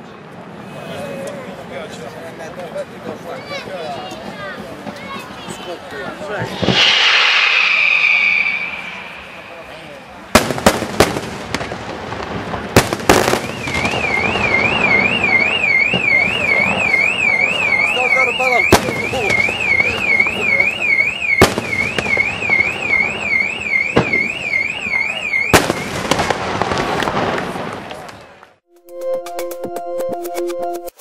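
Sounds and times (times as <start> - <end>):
crowd voices: 0.0 - 10.4, 13.6 - 21.4
fireworks bangs: 4.8 - 28.5
loud hissing whistle: 6.4 - 10.3
car alarm warbling: 13.5 - 25.9.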